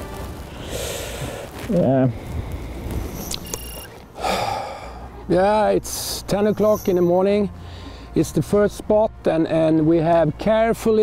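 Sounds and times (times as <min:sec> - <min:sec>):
breathy whoosh: 0:00.5 - 0:03.3
short high electronic beep: 0:03.1 - 0:03.9, 0:06.4 - 0:07.1.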